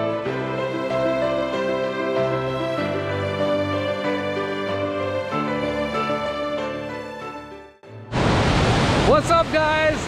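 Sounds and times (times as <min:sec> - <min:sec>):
waterfall rushing: 0:08.1 - 0:10.0
man talking: 0:09.1 - 0:10.0.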